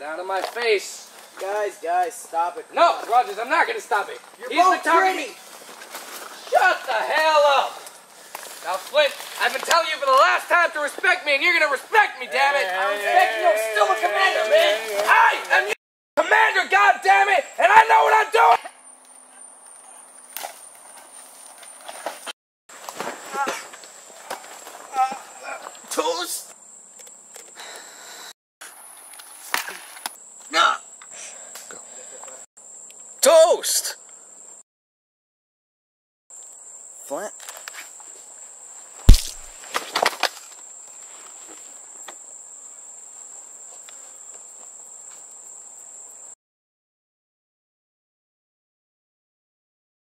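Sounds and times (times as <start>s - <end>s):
scuffling on ground: 4.1s - 10.2s, 19.7s - 25.9s, 37.5s - 41.9s
footsteps in dry brush: 5.4s - 6.9s, 7.8s - 9.8s, 39.0s - 39.7s
man crying out and grunting: 12.6s - 15.5s
pistol shot: 39.1s - 39.5s
soft crashes: 39.1s - 39.6s.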